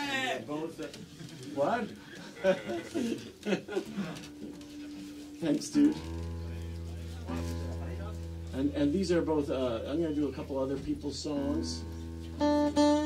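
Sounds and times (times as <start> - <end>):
acoustic guitar chord strummed: 11.4 - 13.0.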